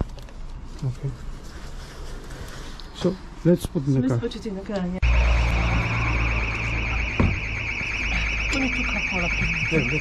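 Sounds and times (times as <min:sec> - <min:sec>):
steady low rumble: 0:05.0 - 0:10.0
warbling electronic alarm siren: 0:05.0 - 0:10.0.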